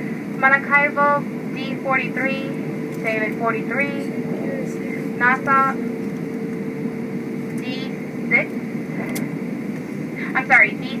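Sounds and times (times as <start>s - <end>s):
airplane cabin noise taxiing: 0.0s - 11.0s
cabin announcement over speakers: 0.0s - 11.0s
faint steady hum: 0.0s - 11.0s.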